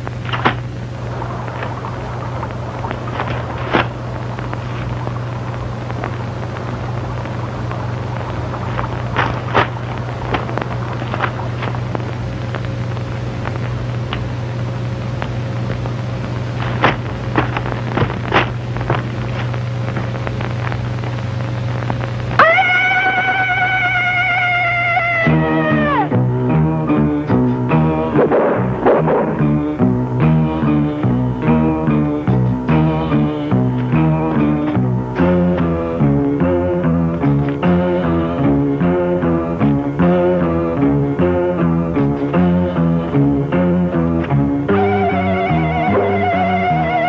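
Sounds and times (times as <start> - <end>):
steady low hum: 0.0 - 47.0
sustained musical note: 44.7 - 47.0.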